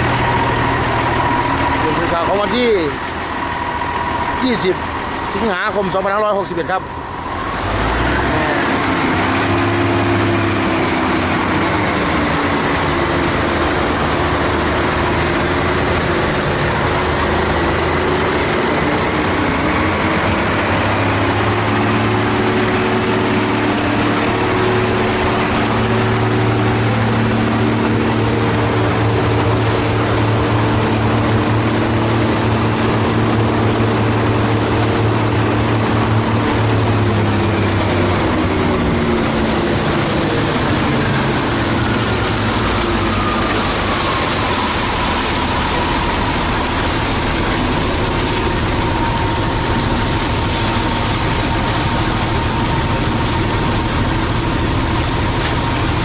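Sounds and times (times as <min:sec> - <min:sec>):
concrete pouring down chute: 0:00.0 - 0:56.0
diesel engine running: 0:00.0 - 0:56.0.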